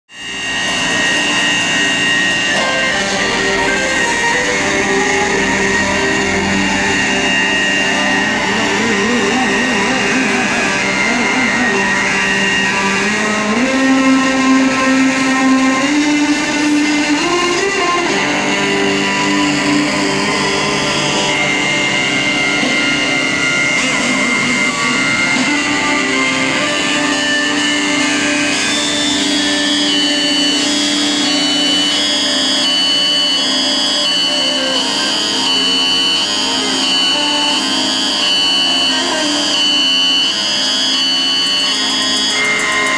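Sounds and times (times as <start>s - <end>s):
guitar-led music: 0.3s - 42.9s.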